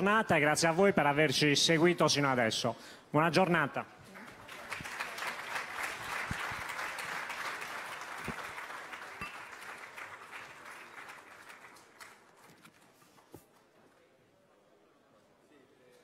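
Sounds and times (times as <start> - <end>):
audience applauding: 4.1 - 13.0.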